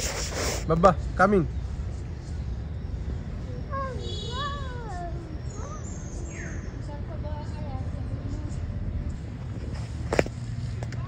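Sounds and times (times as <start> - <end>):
faint wavering voices: 1.4 - 9.3.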